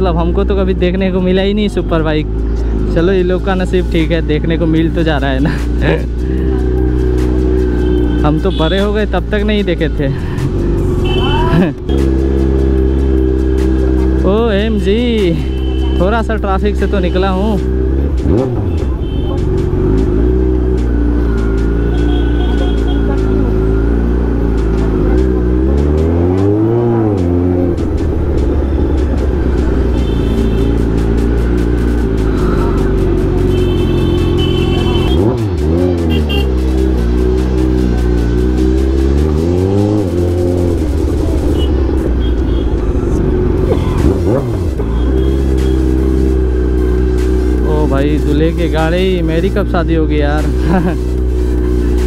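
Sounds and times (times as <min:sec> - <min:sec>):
motorcycle engine with throttle blips: 0:39.2 - 0:47.6.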